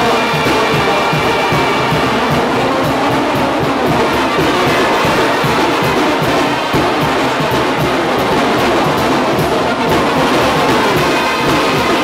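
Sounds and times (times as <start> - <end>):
drums and cymbals beat: 0.0 - 12.0
trumpets: 0.0 - 12.0.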